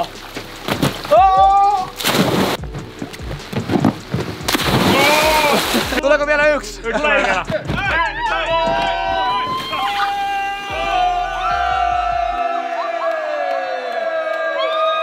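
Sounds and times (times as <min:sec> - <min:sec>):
background music: 0:00.0 - 0:14.2
young men cheering and shouting: 0:01.1 - 0:02.0, 0:04.9 - 0:15.0.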